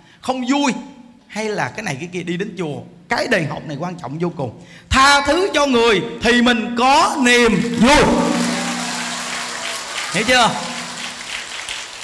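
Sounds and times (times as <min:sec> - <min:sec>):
low steady hum: 0:07.6 - 0:11.2
large crowd applauding: 0:07.7 - 0:12.0.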